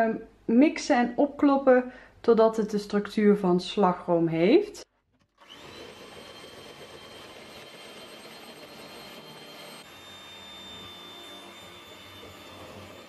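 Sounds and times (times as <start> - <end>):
electric hand mixer whining: 5.3 - 13.0.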